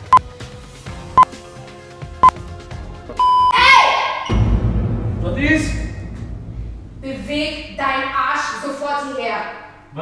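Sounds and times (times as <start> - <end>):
short electronic beeps: 3.2 - 3.6.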